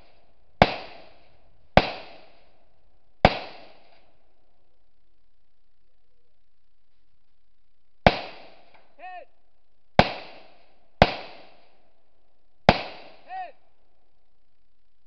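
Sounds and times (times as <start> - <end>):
rifle shots echoing: 0.0 - 4.1, 8.0 - 8.8, 10.0 - 11.9, 12.7 - 13.5.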